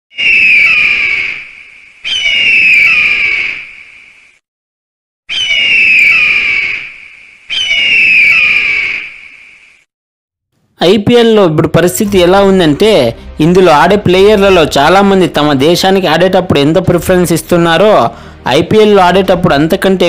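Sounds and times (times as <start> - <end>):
eagle screeching: 0.1 - 3.9, 5.3 - 9.4.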